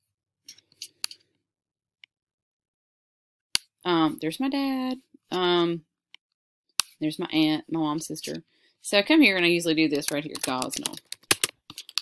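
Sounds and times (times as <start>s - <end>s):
computer mouse clicks and scrapes: 9.9s - 12.0s.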